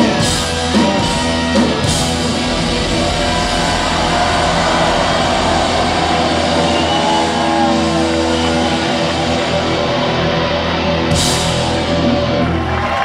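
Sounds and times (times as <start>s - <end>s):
live rock band playing: 0.0s - 12.9s.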